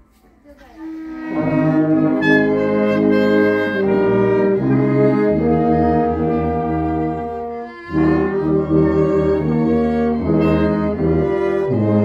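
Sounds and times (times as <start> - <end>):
small ensemble playing chords: 0.8 - 12.0.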